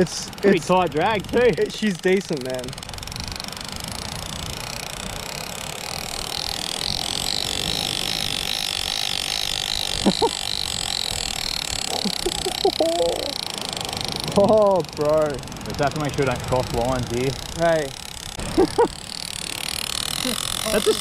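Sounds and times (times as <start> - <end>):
fishing reel drag buzzing: 0.0 - 21.0.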